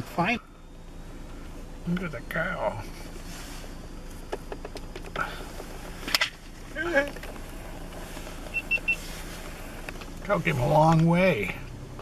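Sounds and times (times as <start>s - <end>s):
car engine hum: 0.0s - 12.0s
quick high beeps: 8.5s - 9.1s.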